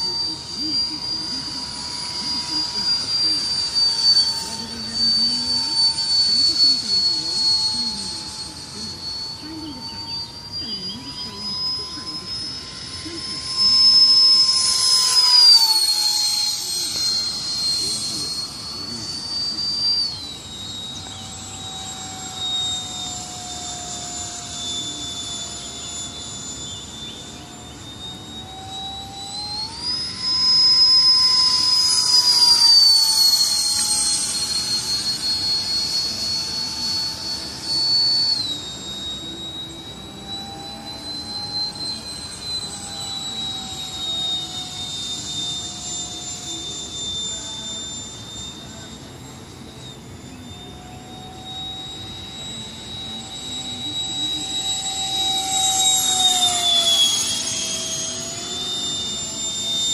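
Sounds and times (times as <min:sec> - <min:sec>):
electric ducted fan whining: 0:00.0 - 0:59.9.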